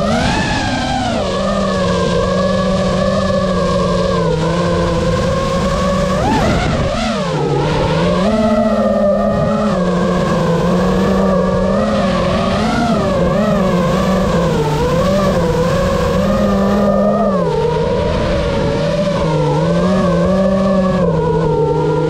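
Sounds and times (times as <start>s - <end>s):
quadcopter motors whining: 0.0s - 22.0s
rush of propeller wash: 0.0s - 22.0s.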